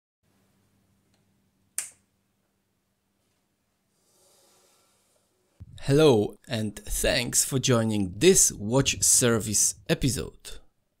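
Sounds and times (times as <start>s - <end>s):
faint room hum: 0.3s - 11.0s
sharp bright snap: 1.8s - 2.0s.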